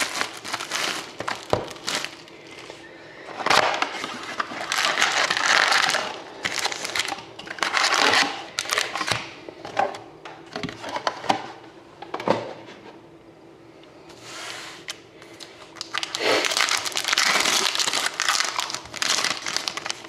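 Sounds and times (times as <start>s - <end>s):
cardboard and wrapper rustling: 0.0s - 2.8s, 3.4s - 9.2s, 15.9s - 20.0s.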